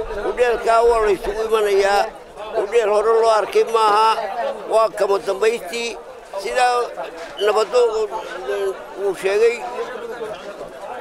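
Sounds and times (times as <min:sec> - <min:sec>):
elderly man talking: 0:00.2 - 0:10.2.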